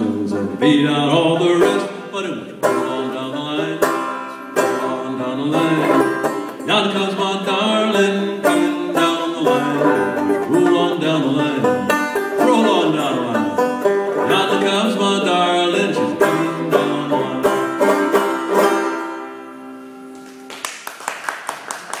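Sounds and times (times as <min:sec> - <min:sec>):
banjo playing: 0:00.0 - 0:20.1.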